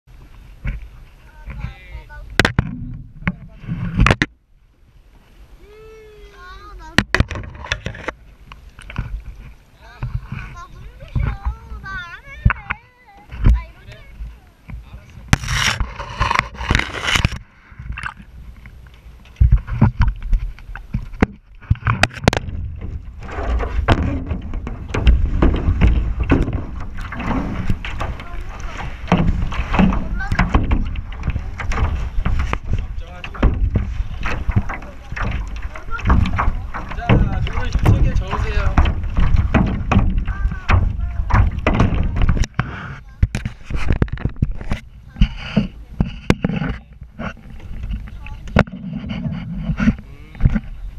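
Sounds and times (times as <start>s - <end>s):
wind rumble on microphone: 0.0s - 50.9s
water sloshing: 0.1s - 50.9s
paddle knocking plastic hull: 0.6s - 4.4s, 6.8s - 50.9s.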